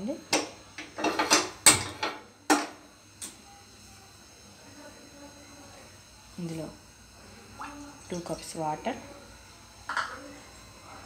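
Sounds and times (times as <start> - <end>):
gas stove igniter clicking: 0.3 - 3.4.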